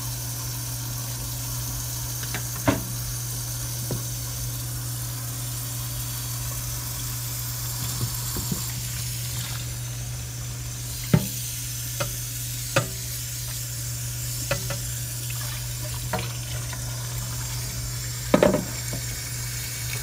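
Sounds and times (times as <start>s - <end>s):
water boiling and bubbling: 0.0s - 20.0s
pan knocking: 11.1s - 11.4s, 12.8s - 13.0s, 14.5s - 14.8s, 18.3s - 19.0s.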